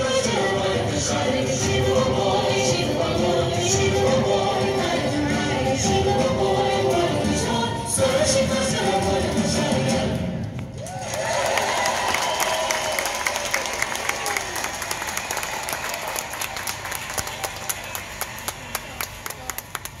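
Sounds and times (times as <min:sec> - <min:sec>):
people cheering: 0:10.8 - 0:19.5
audience applauding: 0:10.8 - 0:20.0.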